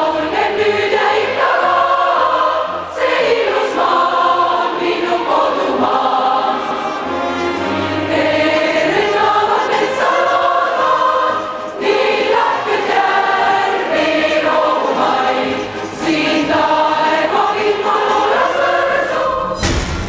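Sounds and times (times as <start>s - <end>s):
choir singing sustained chords: 0.0s - 20.0s
singers breathing: 6.5s - 9.2s.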